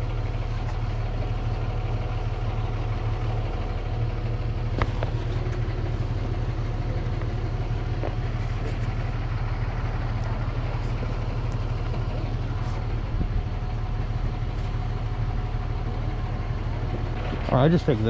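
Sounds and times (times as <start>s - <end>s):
vehicle engine idling: 0.0s - 18.0s.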